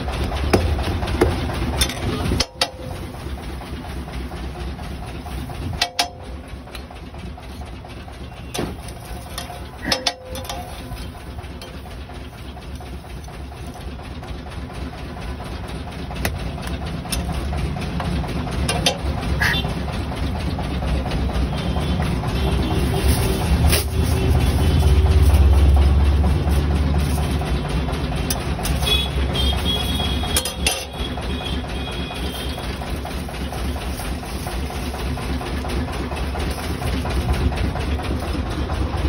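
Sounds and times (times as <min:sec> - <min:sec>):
low mechanical rumble: 0:00.0 - 0:39.0
sharp metal clanks: 0:05.7 - 0:06.4, 0:08.4 - 0:12.0, 0:29.8 - 0:31.3.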